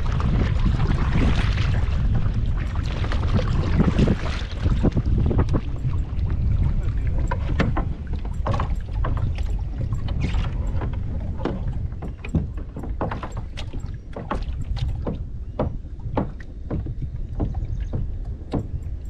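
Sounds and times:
kayak paddle splashing: 0.0 - 19.0
wind rumble on microphone: 0.0 - 19.0
knocks and clicks of gear: 7.2 - 19.0.

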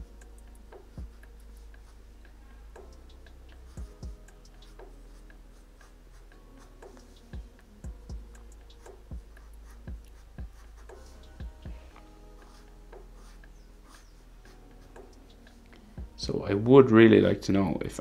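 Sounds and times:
marker pen scratching paper: 0.5 - 15.6.

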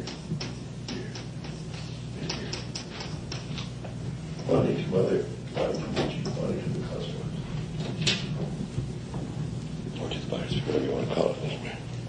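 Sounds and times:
low hum and hiss: 0.0 - 12.0.

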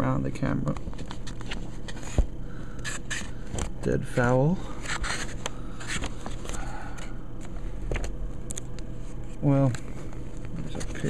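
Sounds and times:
paper scraping and rustling: 4.8 - 6.6.

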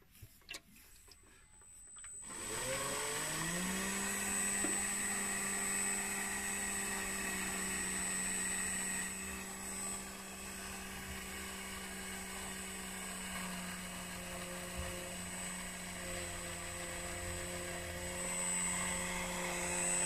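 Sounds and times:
electric motor whine: 1.1 - 20.0.

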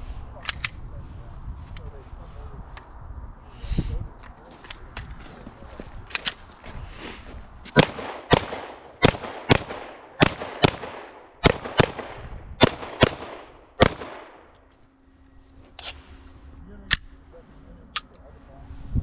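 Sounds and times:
pistol shots: 7.8 - 14.5.

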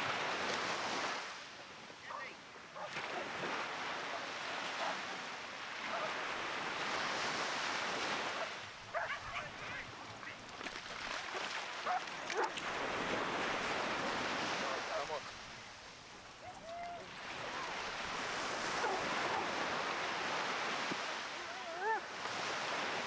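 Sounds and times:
small waves washing up beach: 0.0 - 23.0
dog barking: 2.8 - 3.3, 4.1 - 5.0, 8.4 - 9.8, 11.8 - 12.6, 18.8 - 19.5.

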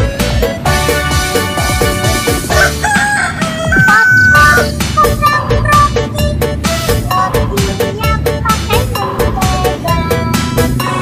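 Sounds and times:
upbeat electronic music: 0.0 - 2.9, 3.6 - 11.0
rooster crowing: 2.5 - 4.7.

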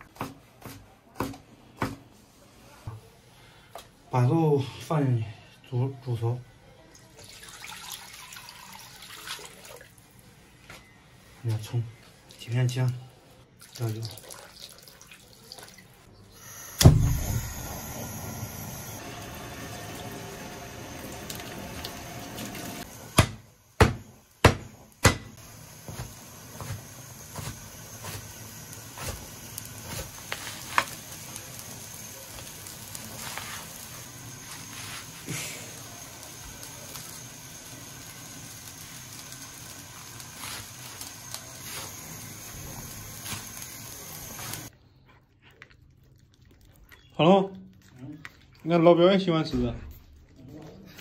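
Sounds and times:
water pouring into a wok: 7.0 - 10.2, 13.5 - 16.1, 19.0 - 23.0, 30.4 - 44.7
cleaver chopping on wooden board: 23.2 - 25.3.

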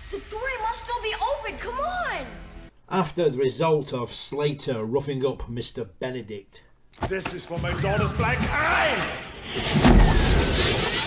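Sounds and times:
man shouting: 8.4 - 9.2.

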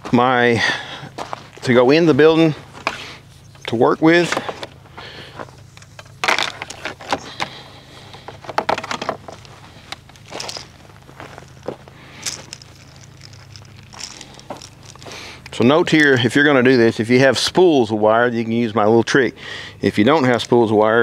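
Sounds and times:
electrical cable rustling and scraping: 1.5 - 16.1.

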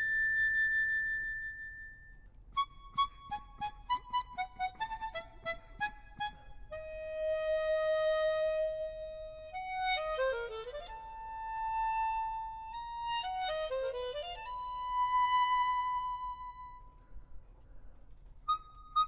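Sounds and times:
harmonica playing solo: 0.0 - 1.8, 2.6 - 16.7, 18.5 - 19.0.

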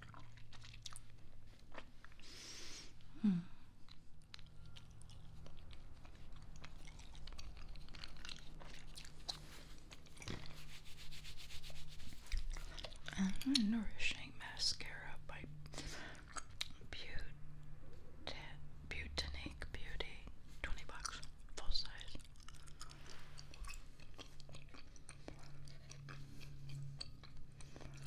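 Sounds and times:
gum chewing mouth sounds: 0.0 - 2.3, 2.9 - 10.8, 12.1 - 17.4, 20.1 - 28.0
soft rubbing: 9.4 - 12.5.

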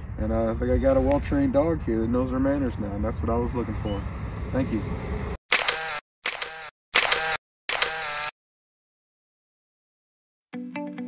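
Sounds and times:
camera shutter clicks: 5.5 - 8.3.

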